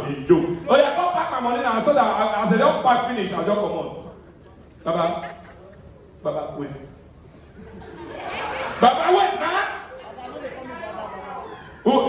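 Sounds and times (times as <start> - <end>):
man speaking into a microphone: 0.0 - 4.2, 4.8 - 5.4, 6.2 - 7.0, 8.8 - 9.9, 11.8 - 12.0
murmur of people talking: 0.0 - 12.0.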